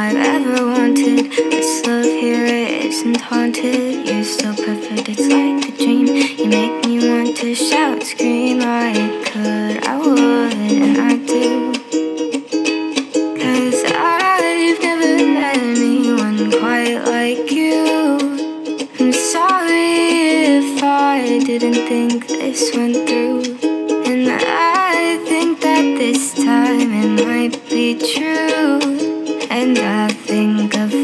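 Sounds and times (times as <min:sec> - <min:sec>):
ukulele playing chords: 0:00.0 - 0:31.0.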